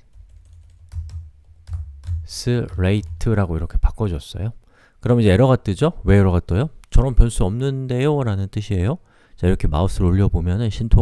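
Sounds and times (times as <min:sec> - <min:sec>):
keyboard keystrokes: 0:00.0 - 0:03.4.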